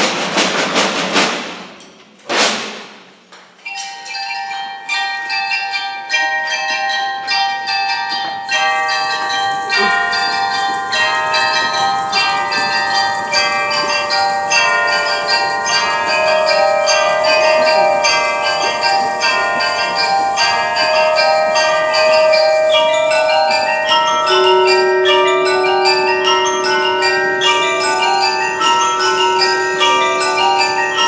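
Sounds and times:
bells and mallet instruments: 3.5 - 31.0.

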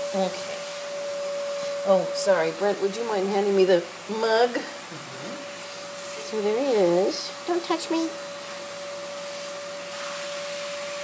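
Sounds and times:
machine hiss: 8.3 - 11.0.

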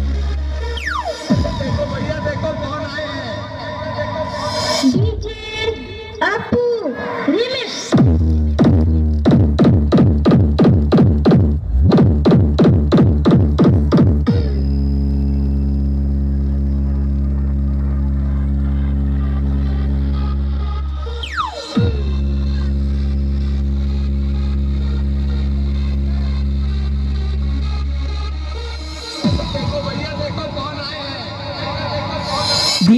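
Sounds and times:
electronic bass music: 0.0 - 6.5, 7.8 - 32.9.

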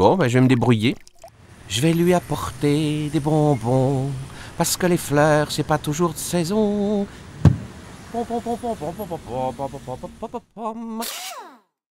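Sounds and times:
rubber stamp thud: 7.4 - 7.7
person speaking: 8.1 - 11.2.

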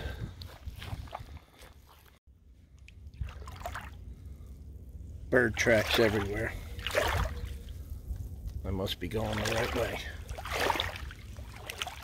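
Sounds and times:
feet wading through mud: 0.0 - 2.2, 3.1 - 4.4, 5.6 - 7.8, 9.2 - 12.0
steady low rumble: 0.0 - 12.0.

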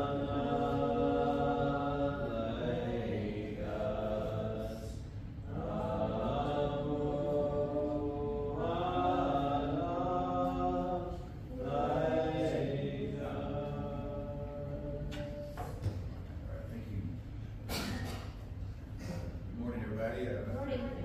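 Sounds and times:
slow chant-like vocal music: 0.0 - 16.5.

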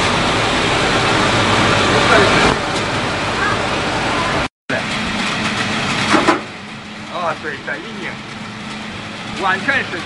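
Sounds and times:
hammer mill running: 0.0 - 10.0.

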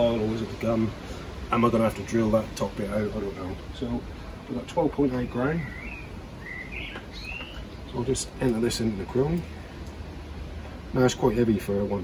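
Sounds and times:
bird chirping: 4.5 - 9.9.

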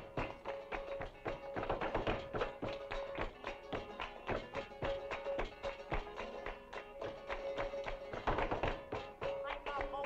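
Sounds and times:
flamenco guitars: 0.0 - 10.0
sharp rhythmic percussive taps: 0.0 - 10.0.

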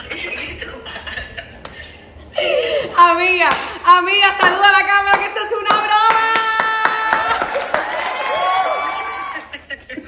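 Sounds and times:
laughter: 0.0 - 2.6, 9.0 - 10.0
hand claps: 4.4 - 8.1.

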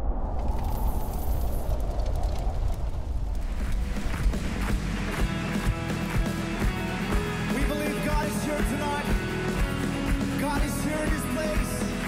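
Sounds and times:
deep cinematic rumble: 0.0 - 5.2
small crackles: 0.4 - 4.4.

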